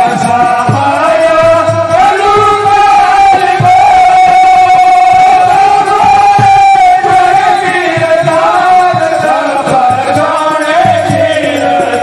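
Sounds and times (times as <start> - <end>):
low drum beats: 0.0 - 12.0
man singing long high note: 0.0 - 12.0.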